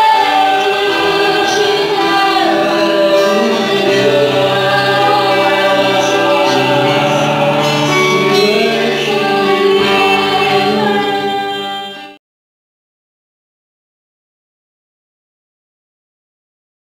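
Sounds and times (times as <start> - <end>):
group singing through a pa: 0.0 - 12.2.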